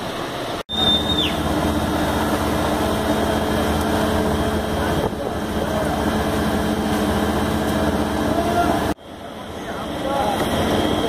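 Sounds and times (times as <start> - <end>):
garbage truck engine and drum drone: 0.0 - 11.0.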